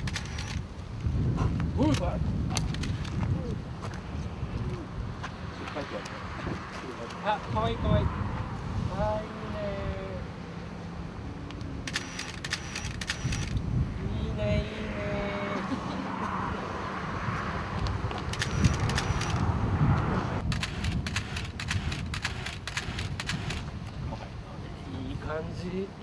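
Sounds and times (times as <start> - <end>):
rapid camera shutter clicks: 0.0 - 0.6, 1.9 - 3.2, 11.8 - 13.6, 18.3 - 19.4, 20.4 - 23.7
steady low rumble: 17.6 - 24.4.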